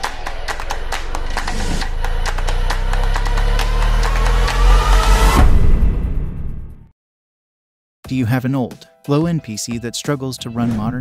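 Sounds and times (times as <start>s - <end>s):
rising whine: 0.0s - 6.7s
deep bass rumble: 0.6s - 6.8s
loud whoosh: 0.8s - 6.8s.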